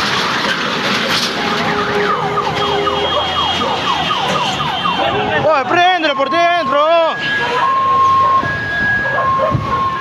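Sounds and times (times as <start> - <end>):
street noise: 0.0 - 10.0
siren sweeping in pitch: 1.4 - 10.0.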